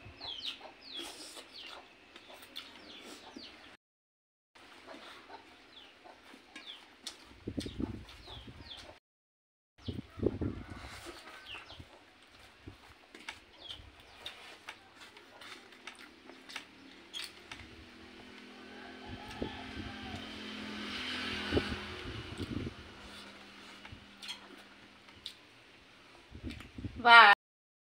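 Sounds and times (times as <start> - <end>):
low motor hum: 16.2 - 25.5
rice mixed on a steel plate: 22.7 - 25.5.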